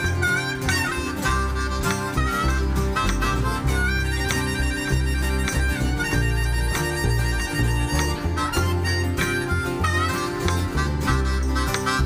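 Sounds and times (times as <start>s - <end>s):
acoustic guitar: 0.0s - 12.0s
held wavering melody: 0.0s - 12.0s
plucked upright bass: 0.0s - 12.0s.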